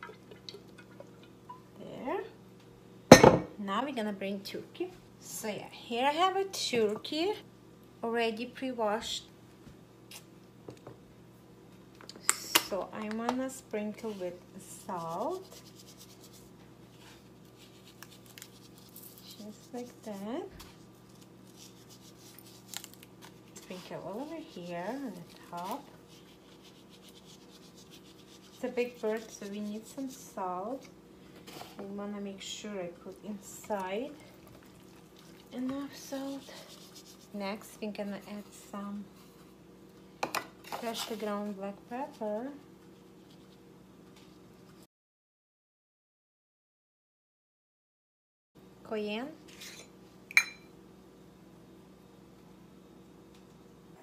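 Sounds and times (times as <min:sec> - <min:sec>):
faint steady hum: 0:00.0 - 0:44.9.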